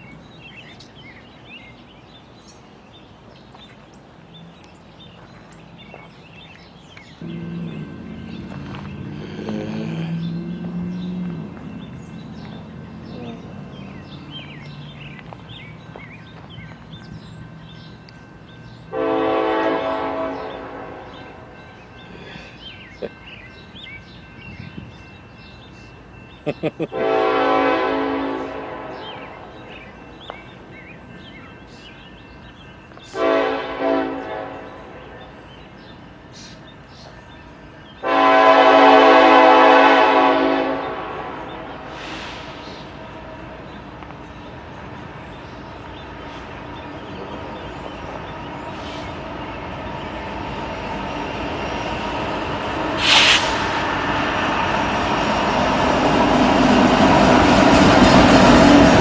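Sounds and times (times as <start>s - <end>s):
train rumble: 0.0s - 59.0s
locomotive air horn blasts: 18.9s - 21.4s, 27.0s - 29.3s, 33.1s - 35.0s, 38.0s - 42.5s, 53.0s - 53.6s.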